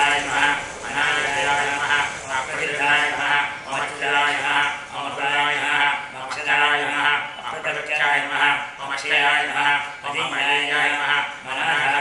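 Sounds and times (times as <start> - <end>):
men chanting mantras: 0.0 - 12.0.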